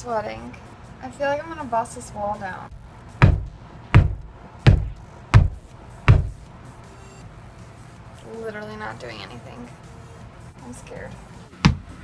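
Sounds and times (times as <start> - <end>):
bottle in shoe knocking on wall: 3.2 - 6.4.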